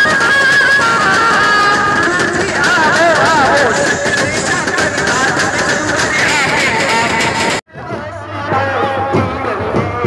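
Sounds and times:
drumming: 0.0s - 10.0s
dancing crowd noise: 1.2s - 7.6s.

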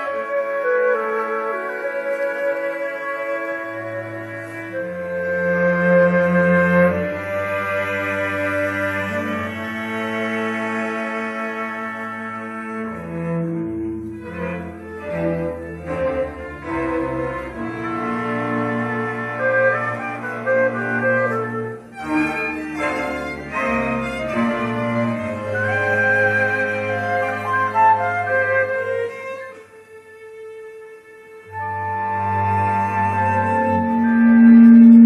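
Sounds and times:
string orchestra playing: 0.0s - 35.0s
low held cello and bass note: 33.6s - 35.0s.

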